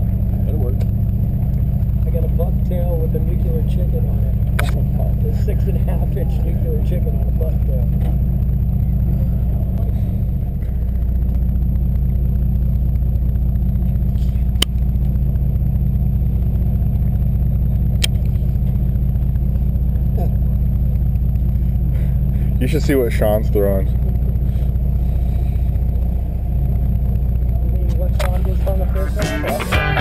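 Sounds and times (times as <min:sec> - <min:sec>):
boat engine low drone: 0:00.0 - 0:30.0.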